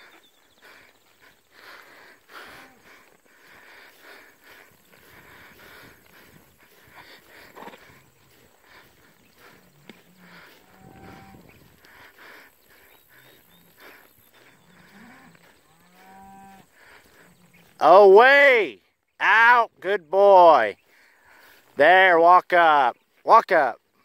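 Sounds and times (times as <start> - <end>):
cattle mooing faintly: 2.2 - 12.0, 13.1 - 17.8.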